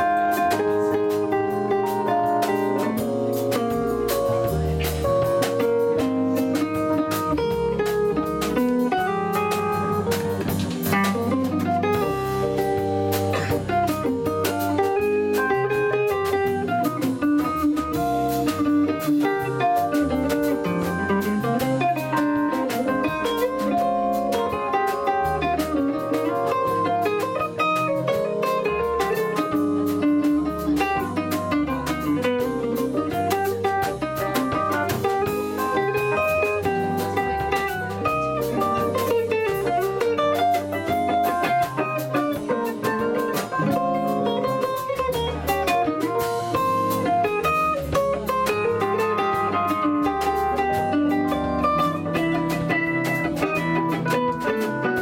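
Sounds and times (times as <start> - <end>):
digital piano: 0.0 - 55.0
double bass walking notes: 0.0 - 55.0
drum kit: 0.0 - 55.0
electric guitar: 0.0 - 55.0.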